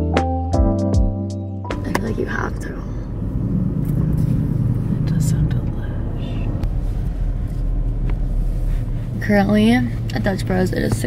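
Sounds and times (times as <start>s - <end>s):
car engine rumble from inside: 1.7s - 11.0s.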